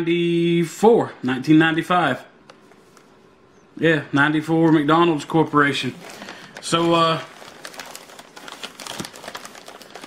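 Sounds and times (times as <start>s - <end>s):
plastic packaging crinkling: 4.6s - 10.0s.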